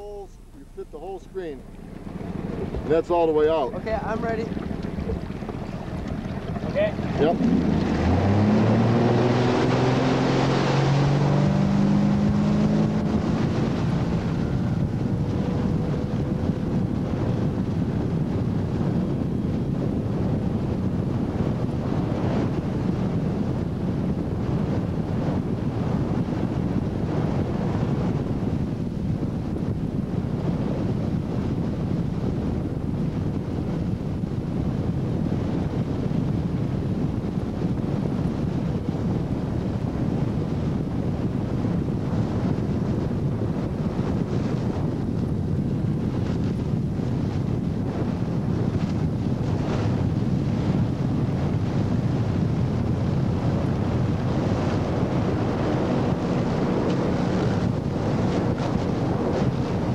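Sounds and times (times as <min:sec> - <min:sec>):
boat engine accelerating: 0:00.0 - 0:29.6, 0:30.4 - 0:59.9
wind buffeting microphone: 0:00.0 - 0:59.9
rushing water: 0:01.0 - 0:14.5.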